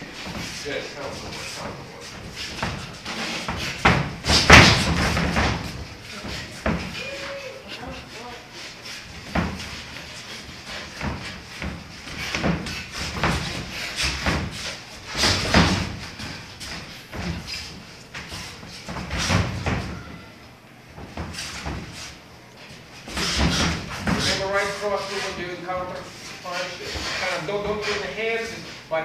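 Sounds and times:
boxing gloves punching thuds: 2.4 - 7.0.

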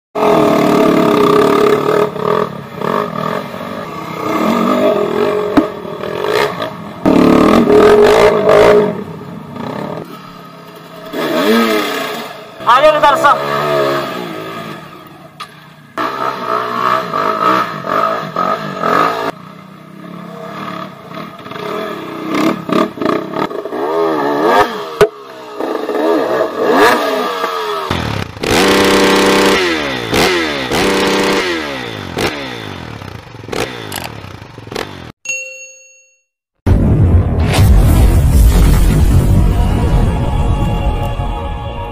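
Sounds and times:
dirt bike engines revving: 0.2 - 35.2.

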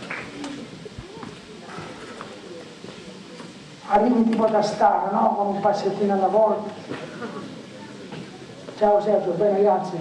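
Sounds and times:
slow footsteps: 0.0 - 3.7
faint murmured voices: 0.0 - 10.0.

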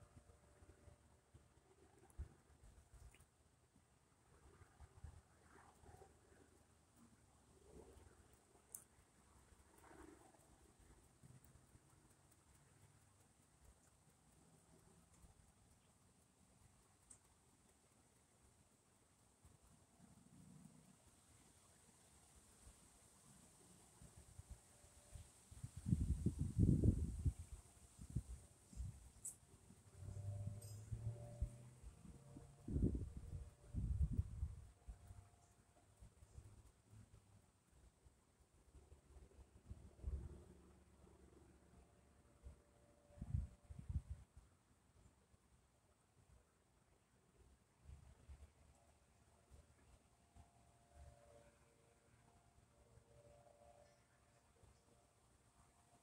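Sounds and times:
wind buffeting microphone: 25.6 - 29.0, 32.6 - 34.6.

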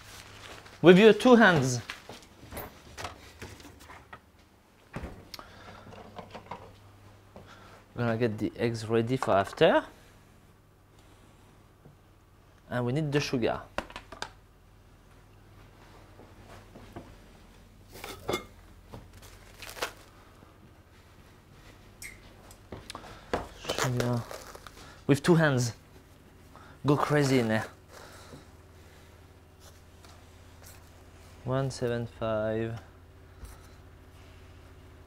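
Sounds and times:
low steady hum: 0.0 - 35.0.

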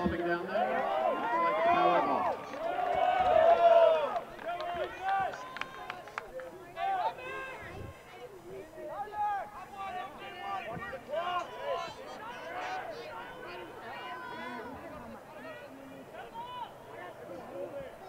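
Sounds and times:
people shouting and calling out: 0.0 - 18.0.

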